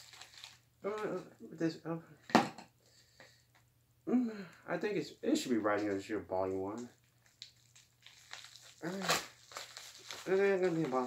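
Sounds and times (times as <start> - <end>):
plastic mailer crinkling: 0.0 - 0.6, 7.0 - 11.0
person speaking: 0.8 - 2.2, 4.1 - 7.0, 8.8 - 9.3, 10.2 - 11.0.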